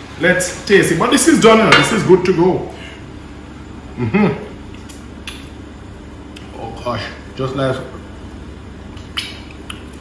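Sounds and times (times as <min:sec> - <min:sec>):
steady low hum: 0:00.0 - 0:10.0
faint mouth click: 0:09.0 - 0:10.0.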